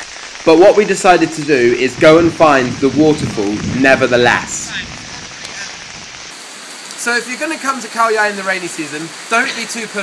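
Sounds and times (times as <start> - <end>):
heavy rain pouring: 0.0 - 10.0.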